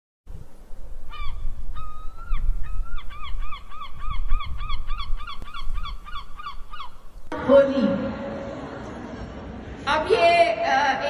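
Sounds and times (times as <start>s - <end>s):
bird calling: 1.1s - 7.3s.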